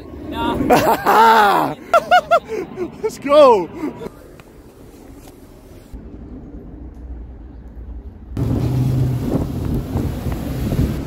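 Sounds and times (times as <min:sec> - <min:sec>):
wind noise on microphone: 0:05.9 - 0:11.0
vehicle driving by: 0:08.4 - 0:11.0.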